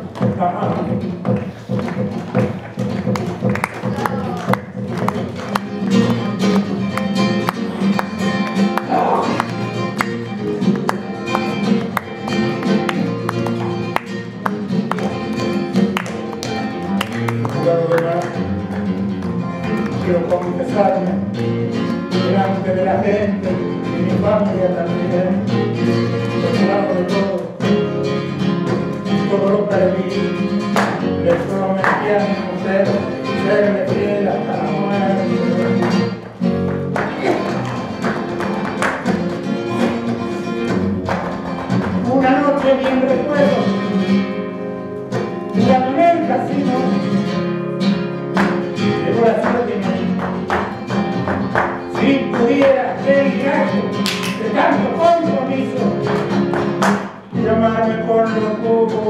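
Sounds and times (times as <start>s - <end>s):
flamenco guitar playing: 0.0s - 59.0s
woman singing flamenco: 28.7s - 36.2s.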